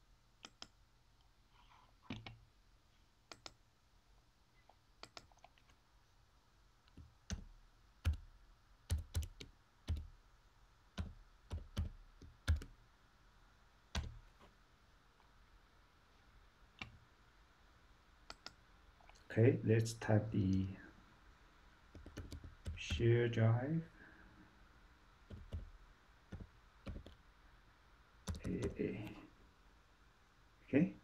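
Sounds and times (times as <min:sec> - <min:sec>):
computer mouse clicks: 0:00.4 - 0:00.8, 0:03.3 - 0:03.6, 0:05.0 - 0:05.8, 0:18.2 - 0:19.2, 0:21.9 - 0:23.0, 0:25.3 - 0:27.2, 0:28.3 - 0:29.2.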